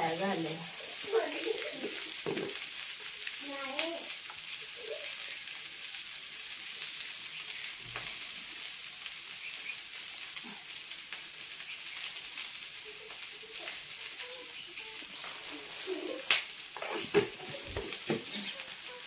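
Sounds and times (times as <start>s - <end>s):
okra sizzling in oil: 0.0s - 19.0s.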